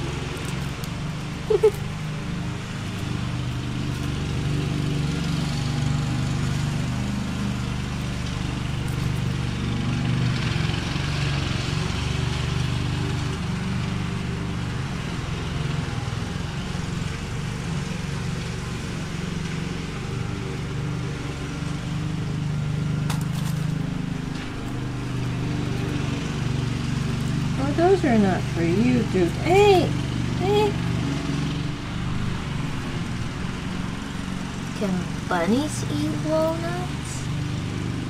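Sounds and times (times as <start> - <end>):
lawn mower engine running: 0.0 - 38.0.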